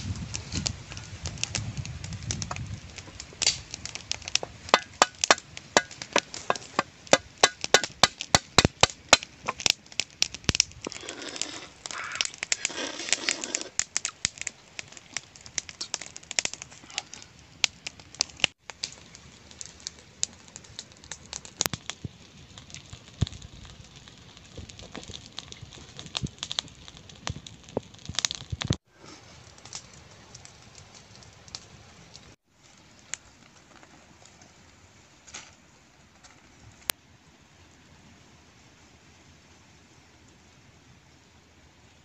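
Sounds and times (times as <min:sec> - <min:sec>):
rough crunching noise: 0:00.0 - 0:36.9
sharp clicks and cracks: 0:00.1 - 0:28.8.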